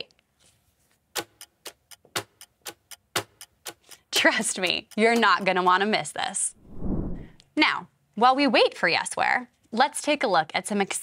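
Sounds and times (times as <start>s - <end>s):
clock ticking: 1.1s - 6.2s.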